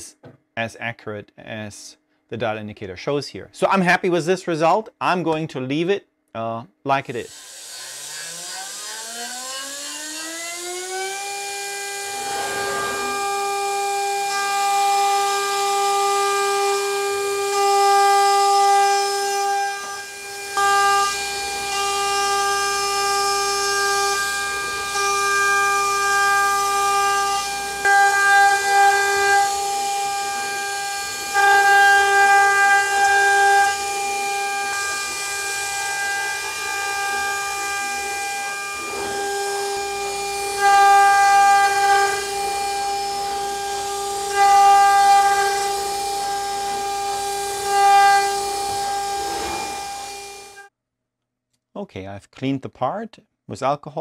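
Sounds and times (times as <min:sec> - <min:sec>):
end mill cutting metal: 0:07.3 - 0:50.7
router spindle high whine: 0:07.3 - 0:50.7.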